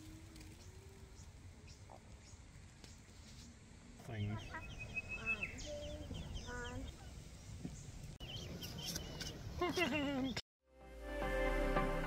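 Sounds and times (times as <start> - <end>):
birds chirping: 0.0 - 10.4
lower pitched bird calls: 4.0 - 10.4.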